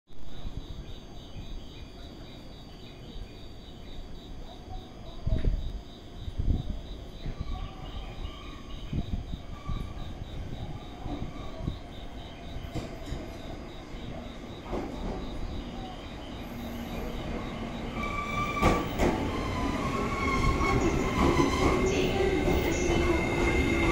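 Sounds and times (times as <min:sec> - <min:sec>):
train rumble: 0:00.3 - 0:23.9.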